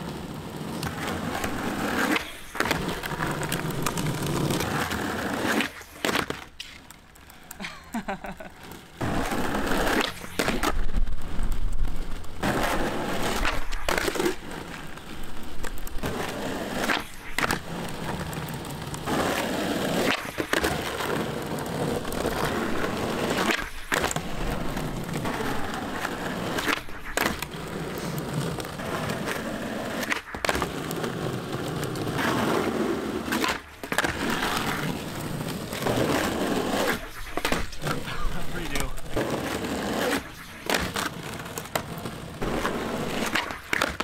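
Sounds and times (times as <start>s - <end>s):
skateboard wooden clacks: 0.0s - 7.6s, 8.5s - 44.0s
skateboard wheels rolling on asphalt: 0.0s - 44.0s.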